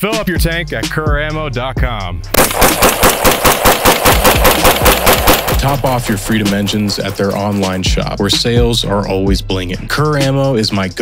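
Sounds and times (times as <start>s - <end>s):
rifle firing rapid shots: 2.4s - 7.8s.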